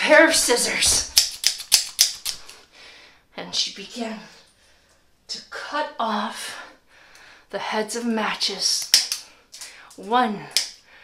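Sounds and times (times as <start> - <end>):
scissors snipping: 0.9 - 2.6, 8.8 - 9.3.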